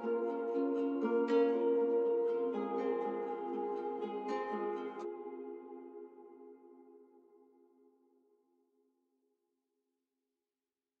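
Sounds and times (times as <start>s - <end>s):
held synth chord: 0.0s - 7.6s.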